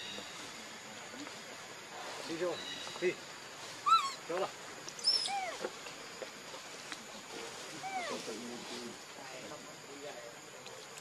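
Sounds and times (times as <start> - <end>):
macaques giving squeaky calls: 3.8 - 4.3, 5.0 - 5.7, 7.8 - 8.2.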